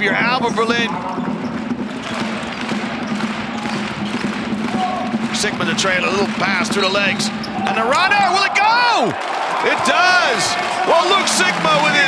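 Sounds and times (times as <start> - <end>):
ball bouncing on court: 0.0 - 7.9
court noise: 0.0 - 12.0.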